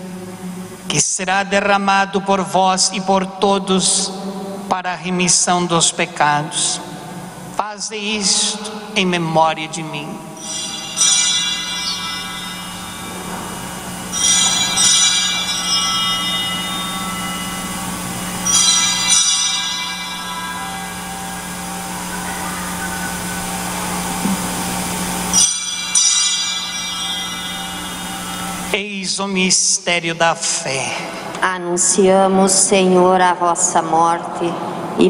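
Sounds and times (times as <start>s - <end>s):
held low chord: 10.2s - 28.8s
altar bells ringing: 10.2s - 29.6s.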